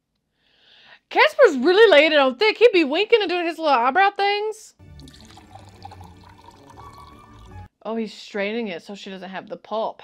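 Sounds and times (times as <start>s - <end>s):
juice pouring into a glass: 4.8s - 7.7s.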